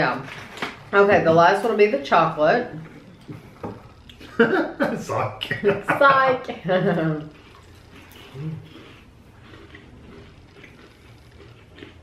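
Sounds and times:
faint chewing of wafer cookies: 0:07.2 - 0:12.0.

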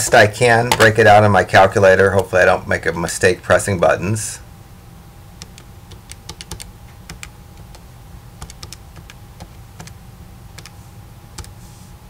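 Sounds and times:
calculator keys clicking: 0:05.4 - 0:07.8, 0:08.4 - 0:10.0.

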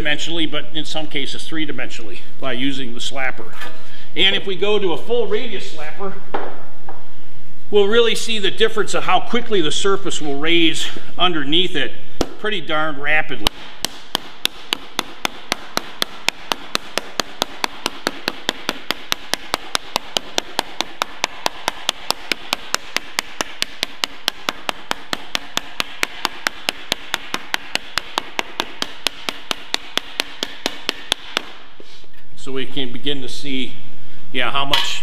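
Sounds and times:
wooden slapper striking sheet metal: 0:13.4 - 0:31.7.

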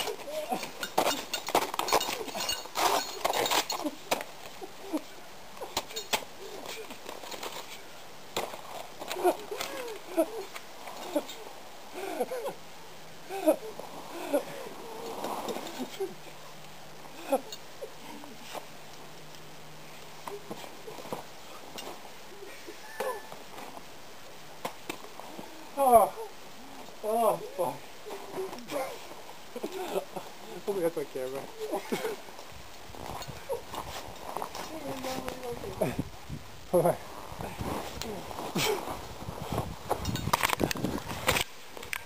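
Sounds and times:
person crying out: 0:00.0 - 0:00.8, 0:09.1 - 0:12.6, 0:13.3 - 0:15.1, 0:17.2 - 0:18.0, 0:22.6 - 0:23.4, 0:25.7 - 0:26.4
grunts of effort: 0:00.0 - 0:01.3, 0:09.1 - 0:12.6, 0:13.2 - 0:16.2, 0:17.1 - 0:18.5, 0:27.0 - 0:30.1, 0:37.4 - 0:38.9
ice axe clinking on rock and ice: 0:00.0 - 0:04.2, 0:05.8 - 0:07.8, 0:40.0 - 0:40.6.

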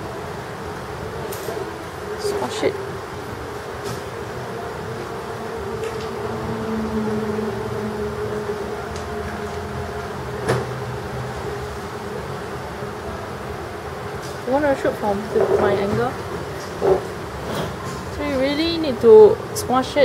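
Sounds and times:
mechanical hum: 0:00.0 - 0:20.0.

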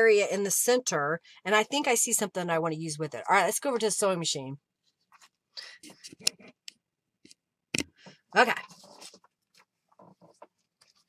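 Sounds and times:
paper rustling: 0:08.6 - 0:11.0.

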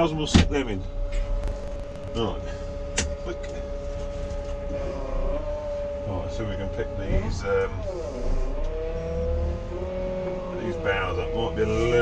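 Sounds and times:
telehandler engine rumbling: 0:00.0 - 0:12.0.

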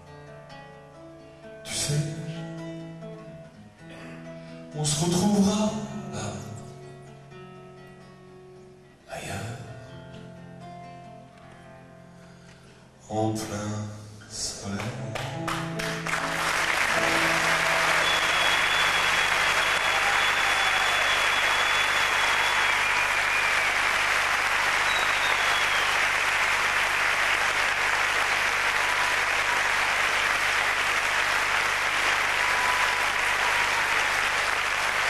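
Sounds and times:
audience applauding: 0:14.8 - 0:35.0.

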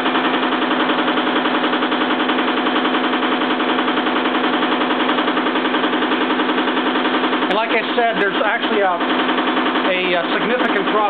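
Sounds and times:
electric motor humming with pulsing: 0:00.0 - 0:11.0.

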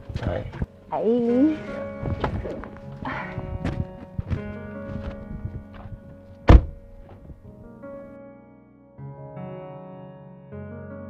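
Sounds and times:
soft background music: 0:00.0 - 0:11.0
heavy door thunk: 0:06.4 - 0:07.4.

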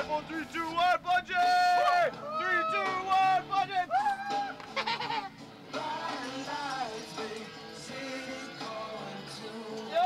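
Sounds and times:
person yelling and whooping: 0:01.4 - 0:04.6.

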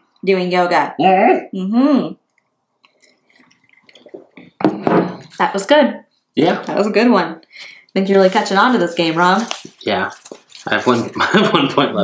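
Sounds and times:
person speaking: 0:06.4 - 0:06.9, 0:08.1 - 0:12.0.

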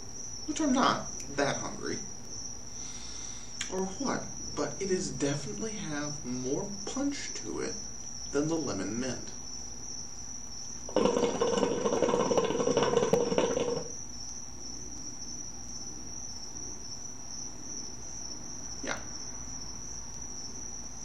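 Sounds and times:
hookah water bubbling: 0:10.9 - 0:14.0.

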